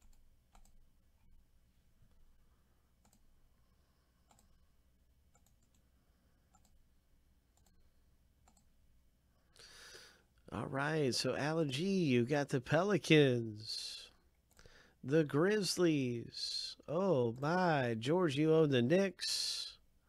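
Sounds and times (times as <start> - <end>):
computer mouse clicks: 0.0 - 0.8, 3.0 - 3.2, 4.2 - 4.6, 5.3 - 5.9, 6.5 - 6.8, 7.5 - 7.8, 8.4 - 8.7.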